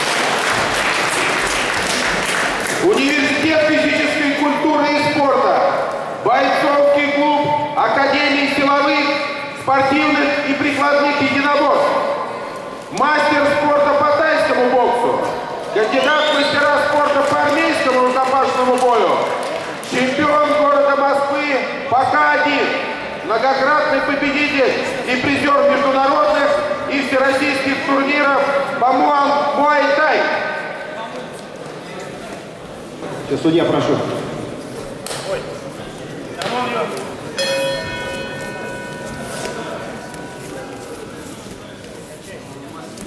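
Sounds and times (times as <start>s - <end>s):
man announcing: 2.8s - 12.3s, 12.9s - 31.3s
boxing ring bell ringing: 37.3s - 41.5s.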